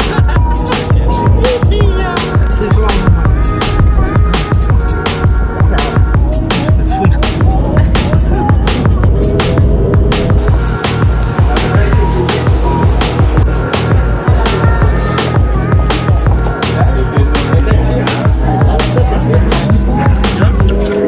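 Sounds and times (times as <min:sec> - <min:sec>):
background music with beat: 0:00.0 - 0:21.0.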